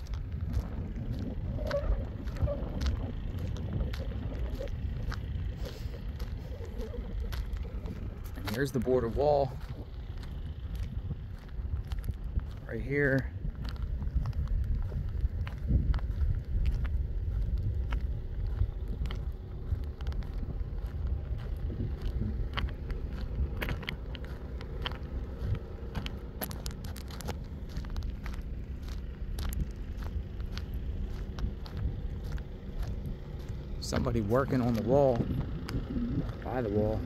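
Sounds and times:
car engine rumble: 0.0 - 37.0
road noise: 0.0 - 37.0.

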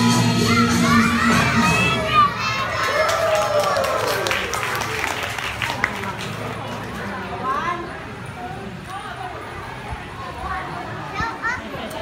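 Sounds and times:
backing music: 0.0 - 2.2
children shouting: 0.0 - 4.9
crowd cheering: 0.0 - 7.0.

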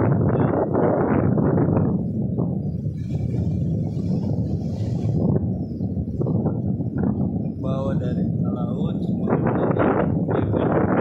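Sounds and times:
wind buffeting microphone: 0.0 - 11.0
waves washing onto shore: 2.7 - 10.6.

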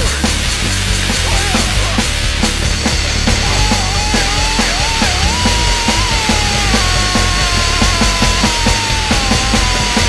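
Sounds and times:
distorted guitar and bass: 0.0 - 10.0
fast drums: 0.0 - 10.0.

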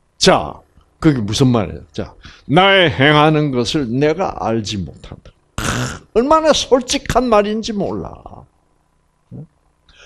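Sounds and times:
short vocal sound: 5.6 - 6.1.

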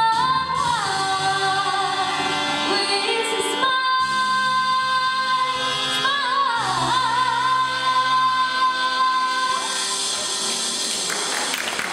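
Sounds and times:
audience applause: 10.2 - 11.9.

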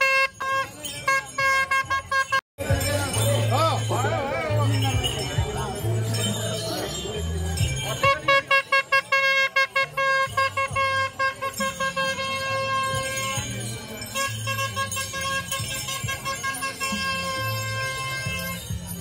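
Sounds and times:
vehicle horn toots and blasts: 0.0 - 2.4, 8.0 - 19.0.

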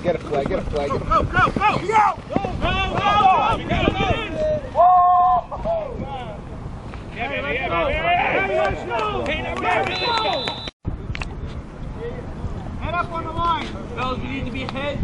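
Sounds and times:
men yelling and cheering: 0.9 - 10.7.

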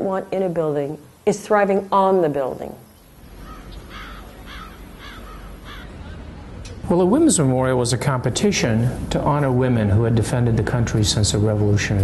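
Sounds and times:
low steady outdoor rumble: 0.0 - 12.0
bird calling in short calls: 3.4 - 6.0.

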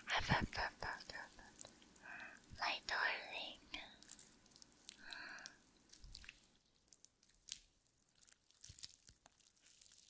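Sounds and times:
woman whispering: 0.0 - 1.5, 2.6 - 4.0.

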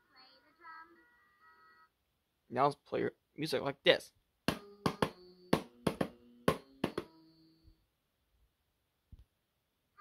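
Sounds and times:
toy drum pad slapped by hand: 4.5 - 7.2.

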